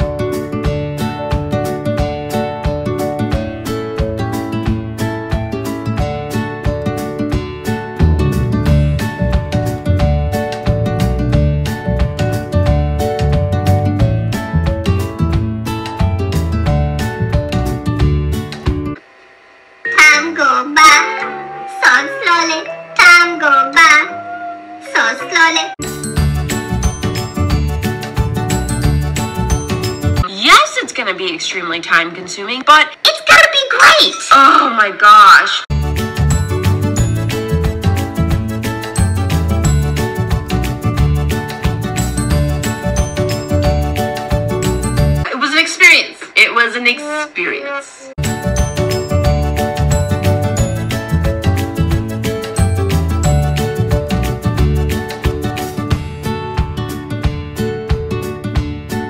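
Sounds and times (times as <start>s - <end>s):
guitar background music: 0.0s - 19.0s, 19.9s - 30.2s, 35.7s - 45.3s, 48.2s - 59.0s
woman's voice: 19.9s - 24.2s, 24.8s - 25.8s, 30.2s - 35.7s, 45.3s - 48.2s.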